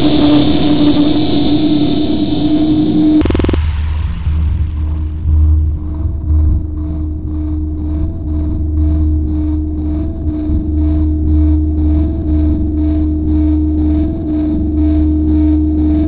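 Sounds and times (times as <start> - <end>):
faint high pulsing: 0.0 - 3.6
loud low rumble: 0.0 - 13.8
steady droning tone: 0.0 - 16.0.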